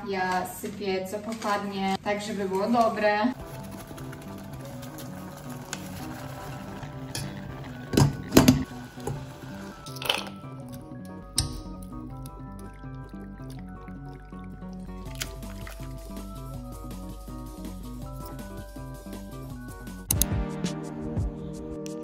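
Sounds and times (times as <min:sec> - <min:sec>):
light background music: 0:00.0 - 0:22.0.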